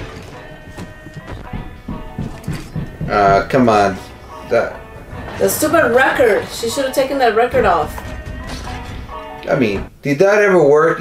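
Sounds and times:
heavy banging on a door: 0.0s - 10.0s
film soundtrack music: 0.0s - 10.1s.

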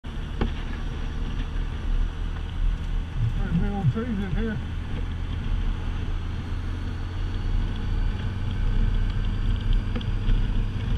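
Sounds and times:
motorcycle engine drone: 0.0s - 10.9s.

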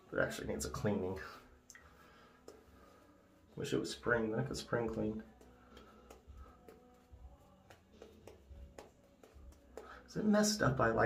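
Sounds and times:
faint pop music: 0.0s - 11.0s
shaving brush strokes on face: 2.4s - 11.0s.

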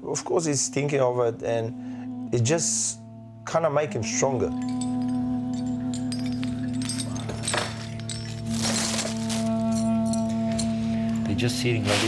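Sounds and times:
background music sustained tones: 0.0s - 12.0s
metal medals clinking: 4.5s - 11.4s.

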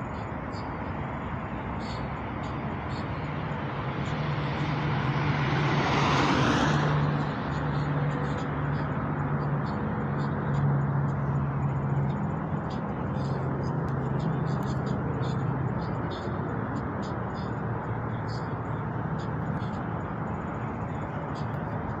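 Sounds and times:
steady rushing noise with hum: 0.0s - 22.0s.

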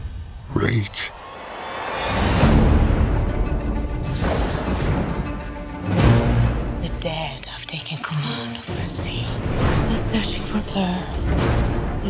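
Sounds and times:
trailer music: 1.3s - 12.0s
woman speaking: 6.8s - 11.3s
whispered voices: 7.4s - 9.4s.

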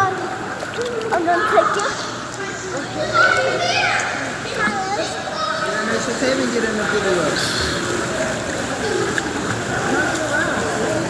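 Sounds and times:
children talking and calling out: 0.0s - 6.2s.

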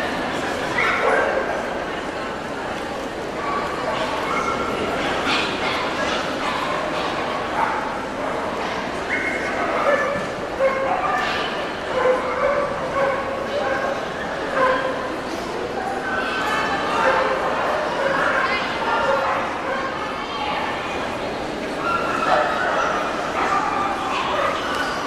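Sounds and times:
crowd chatter in a hall: 0.0s - 25.0s
dogs barking: 9.1s - 15.1s.

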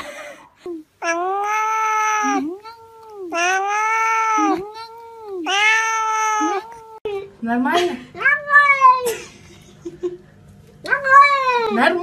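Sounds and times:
cat meowing: 1.0s - 7.0s, 8.2s - 9.0s.

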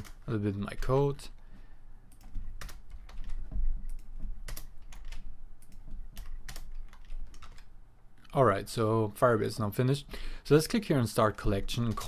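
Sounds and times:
computer keyboard typing: 0.0s - 0.9s, 2.1s - 7.7s, 11.8s - 12.0s.

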